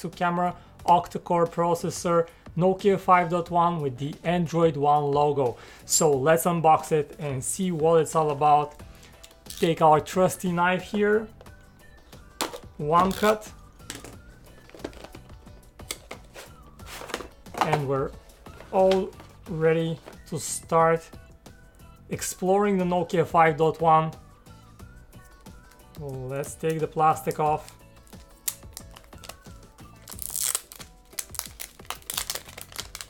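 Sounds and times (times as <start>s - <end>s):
quiet background music: 0.0s - 33.0s
plastic film crinkling as peeled: 27.6s - 33.0s.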